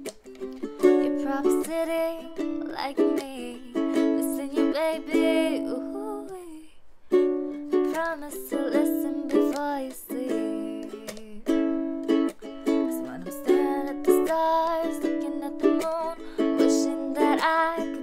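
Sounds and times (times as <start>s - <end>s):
ukulele strumming chords: 0.0s - 18.0s
woman singing: 0.8s - 6.8s, 7.7s - 11.7s, 12.6s - 18.0s.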